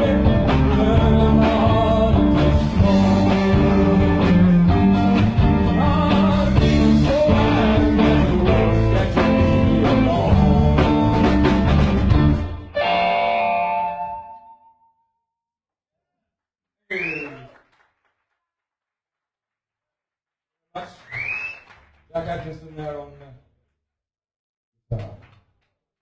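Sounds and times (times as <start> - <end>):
drums: 0.0 - 12.9
bass guitar: 0.0 - 14.6
blues-rock band playing: 0.0 - 14.6
electric guitars: 0.0 - 14.7.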